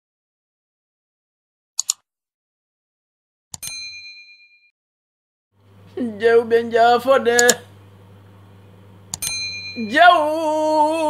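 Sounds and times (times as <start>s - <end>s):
mouse click: 1.8s - 2.0s.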